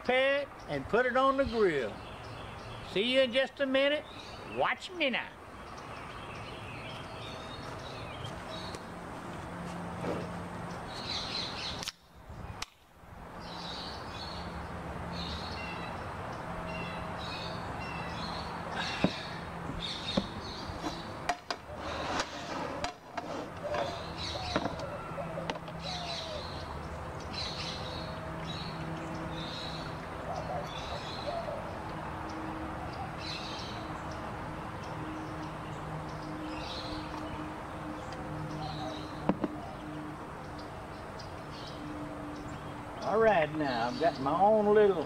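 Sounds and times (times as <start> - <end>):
small birds chirping: 0.0 - 12.8, 13.4 - 45.0.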